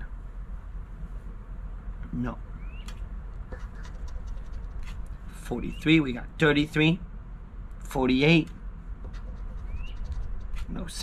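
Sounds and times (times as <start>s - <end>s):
coin scratching lottery ticket: 3.5s - 5.0s, 9.1s - 10.9s.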